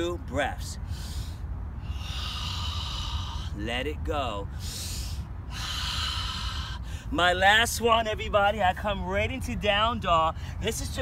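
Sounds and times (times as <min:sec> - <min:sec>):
low background rumble: 0:00.0 - 0:11.0
man breathing forcefully: 0:00.8 - 0:03.6, 0:04.5 - 0:07.1.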